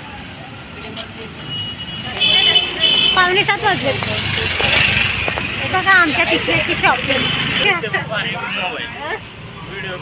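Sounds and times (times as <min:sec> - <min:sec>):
street traffic noise: 0:00.0 - 0:10.0
vehicle horn honking: 0:01.5 - 0:03.4.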